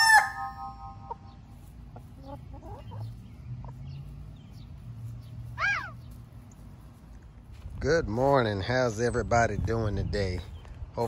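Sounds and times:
rooster crowing: 0.0s - 1.0s
chicken call rising and falling: 0.0s - 1.1s, 5.6s - 6.0s
chickens clucking: 0.0s - 7.4s.

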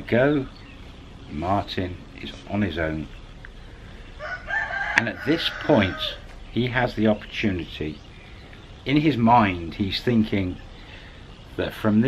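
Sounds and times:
rooster crowing: 4.1s - 6.4s.

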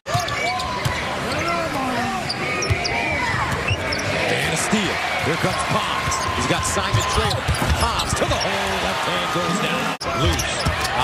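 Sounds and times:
crowd noise: 0.0s - 11.0s
sneakers squeaking: 0.1s - 4.3s, 5.4s - 8.6s, 10.2s - 11.0s.

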